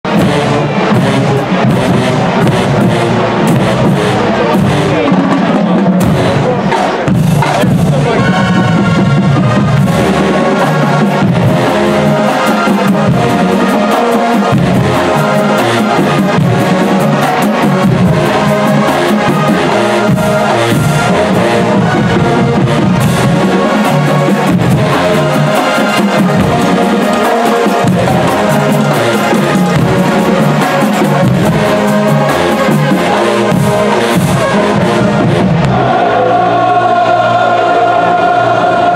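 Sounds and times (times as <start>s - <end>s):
drum line: 0.0s - 38.9s
marching band brass: 0.0s - 38.9s.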